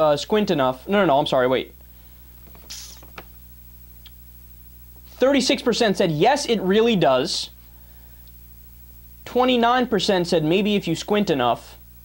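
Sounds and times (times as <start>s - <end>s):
low electrical hum: 0.0s - 12.0s
soft hiss: 0.0s - 12.0s.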